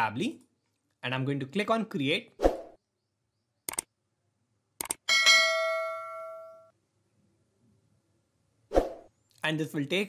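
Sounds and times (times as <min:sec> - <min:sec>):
double mouse click: 0:03.7 - 0:03.9
notification bell ding: 0:05.1 - 0:06.7.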